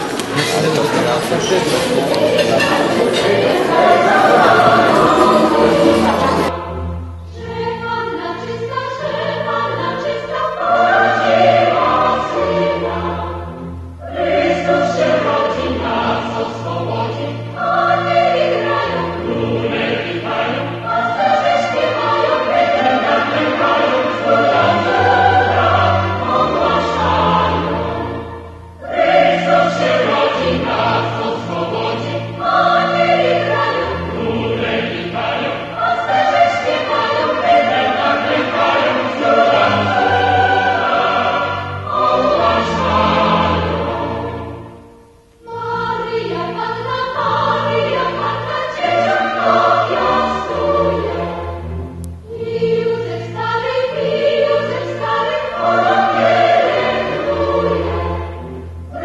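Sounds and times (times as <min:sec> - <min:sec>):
choir singing slow phrases: 0:00.0 - 0:59.0.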